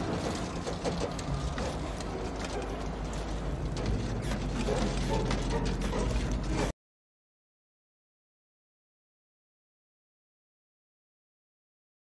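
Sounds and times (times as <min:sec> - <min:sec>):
car body clanking and rattling: 0:00.0 - 0:06.7
low engine rumble: 0:00.0 - 0:06.7.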